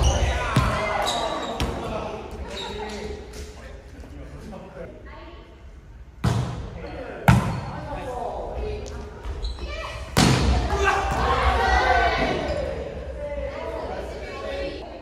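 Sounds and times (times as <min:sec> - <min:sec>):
players shouting: 0:10.4 - 0:14.8.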